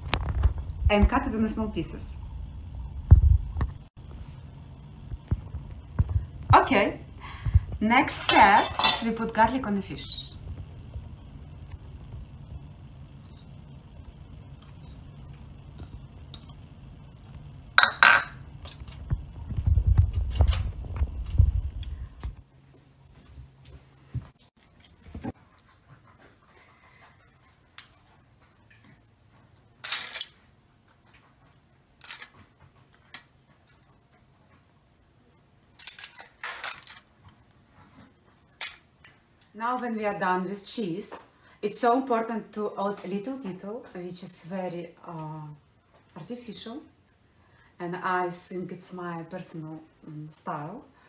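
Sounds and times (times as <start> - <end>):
low hum: 0.0 - 30.2.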